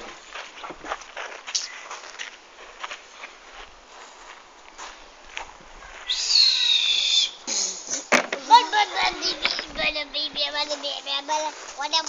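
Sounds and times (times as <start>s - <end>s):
other voices: 7.0s - 12.0s.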